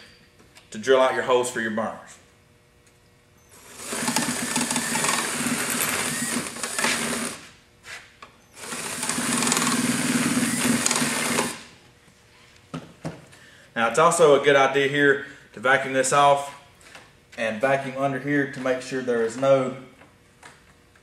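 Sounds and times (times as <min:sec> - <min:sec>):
power drill boring holes: 0:03.5 - 0:07.4, 0:08.6 - 0:11.7.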